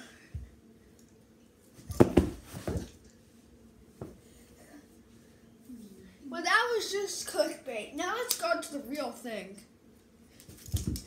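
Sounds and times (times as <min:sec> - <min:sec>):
child thumping on floor: 0:01.8 - 0:03.0.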